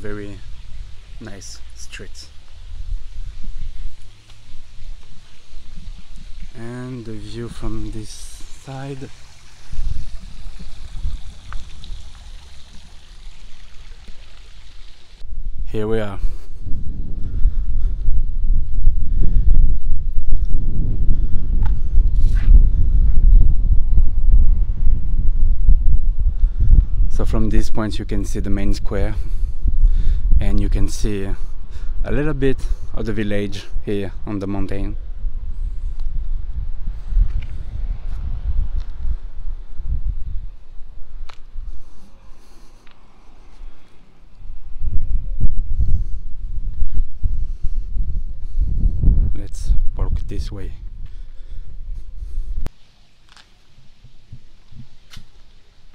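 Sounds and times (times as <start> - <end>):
wind buffeting microphone: 0.0 - 52.7, 53.8 - 55.9
footsteps on stone paving: 2.4 - 7.8, 51.0 - 55.6.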